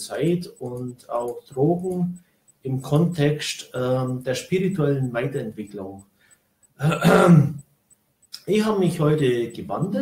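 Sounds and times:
man clearing his throat: 0:06.8 - 0:07.6.

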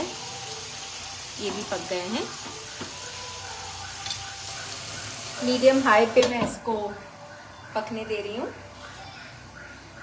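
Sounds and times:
vegetables sizzling in a frying pan: 0:00.0 - 0:06.4.

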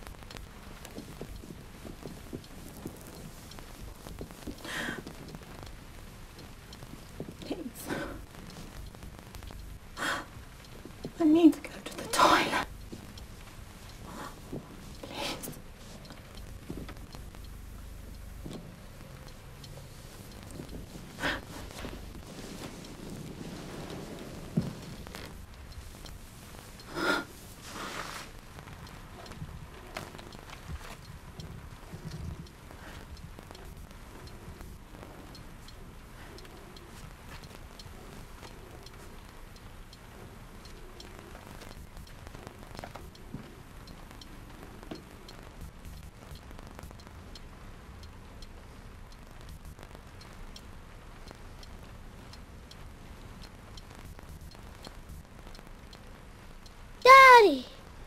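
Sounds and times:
faint clicks: 0:00.0 - 0:58.0
low steady hiss: 0:00.0 - 0:58.0.

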